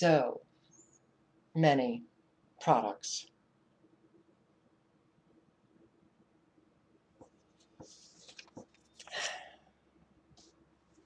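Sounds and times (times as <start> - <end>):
soft scratchy rustles: 7.2 - 9.1.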